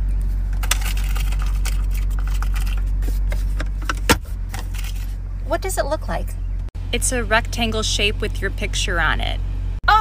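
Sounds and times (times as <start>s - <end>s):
rummaging through small items: 0.6s - 3.6s.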